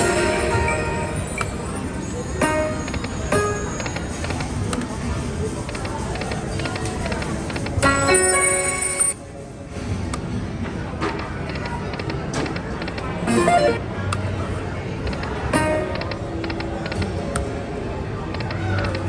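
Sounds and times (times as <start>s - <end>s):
slot machine game sounds: 7.6s - 9.2s, 12.9s - 14.0s
background din: 12.4s - 13.9s.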